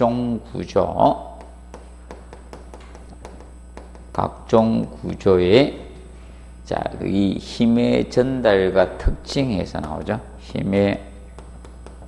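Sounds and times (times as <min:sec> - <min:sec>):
low steady hum: 0:00.0 - 0:12.0
chalk tapping on chalkboard: 0:01.3 - 0:04.3, 0:11.3 - 0:12.0.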